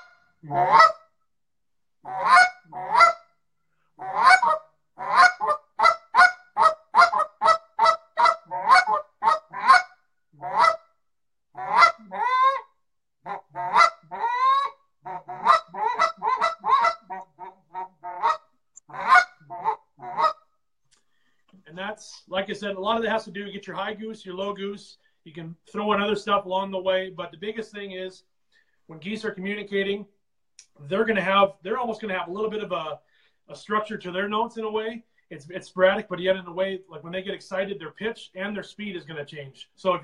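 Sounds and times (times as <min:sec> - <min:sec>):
goose call honks: 0:00.0 - 0:01.0, 0:02.0 - 0:03.2, 0:04.0 - 0:10.8, 0:11.6 - 0:12.6, 0:13.2 - 0:20.4.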